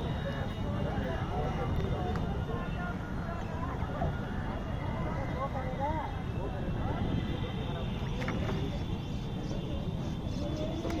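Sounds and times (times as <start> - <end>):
distant voices talking: 0.0 - 11.0
low wind rumble: 0.0 - 11.0.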